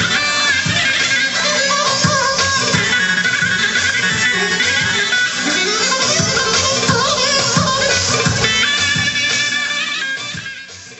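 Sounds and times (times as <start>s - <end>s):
dance band playing live: 0.0s - 10.9s
plucked-string lead: 2.7s - 9.6s.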